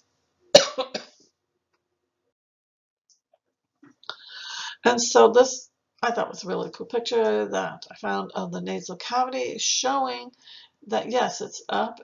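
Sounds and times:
woman coughing: 0.6s - 1.1s.

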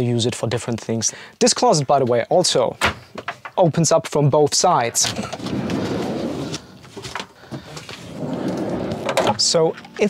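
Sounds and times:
sliding van door rumbling: 5.1s - 7.0s, 7.6s - 9.4s.

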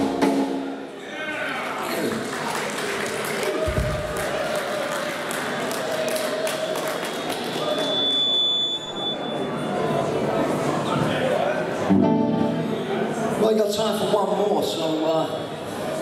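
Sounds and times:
audience clapping and cheering: 1.5s - 8.2s
short high whistle: 7.6s - 9.5s.

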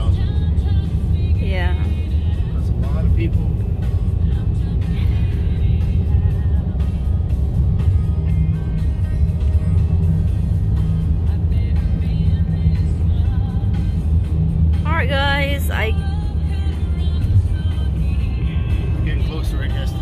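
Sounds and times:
car driving rumble inside cabin: 0.0s - 20.0s
music playing: 0.0s - 20.0s.

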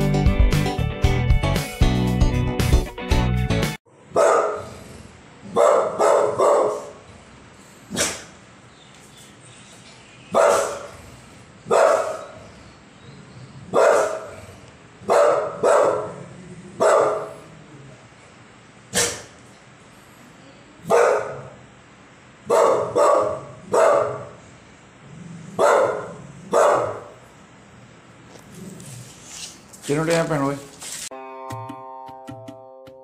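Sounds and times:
dog barking: 4.1s - 4.8s, 5.5s - 7.0s, 7.9s - 8.3s, 10.3s - 11.0s, 11.7s - 12.4s, 13.7s - 17.5s, 18.9s - 19.4s, 20.8s - 21.6s, 22.5s - 24.4s, 25.6s - 27.2s.

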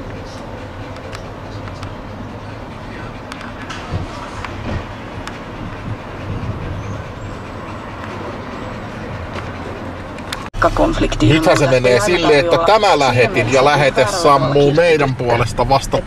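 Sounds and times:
low rumbling: 0.0s - 16.0s.

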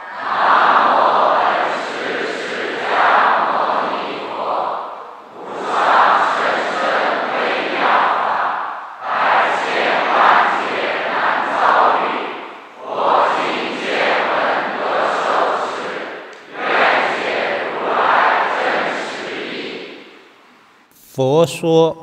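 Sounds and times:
crowd chanting in unison: 0.0s - 20.2s.

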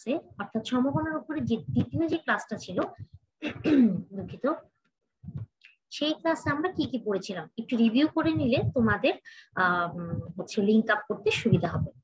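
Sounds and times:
woman clearing her throat: 3.4s - 4.1s.

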